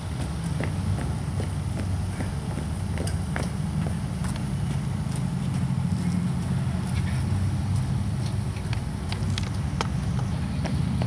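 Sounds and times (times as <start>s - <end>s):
boots stepping on pavement: 0.0s - 11.0s
steady low rumble: 0.0s - 11.0s.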